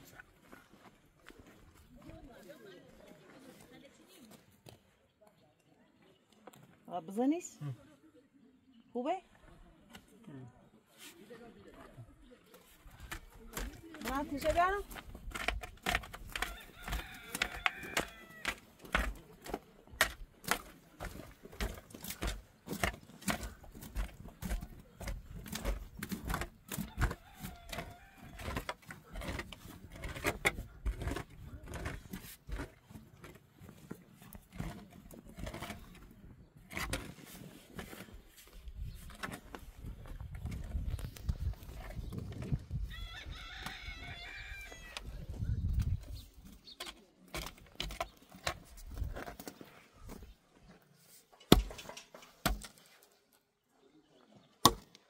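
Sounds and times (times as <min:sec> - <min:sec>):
shovel striking stony soil: 0:13.0 - 0:33.4, 0:51.4 - 0:52.9.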